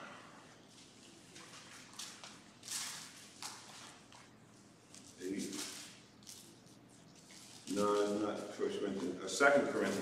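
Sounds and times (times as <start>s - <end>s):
man speaking: 5.2s - 5.7s, 7.7s - 10.0s.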